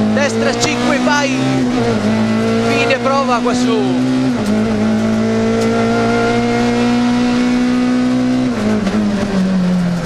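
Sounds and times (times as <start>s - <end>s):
rally car engine revving: 0.0s - 10.0s.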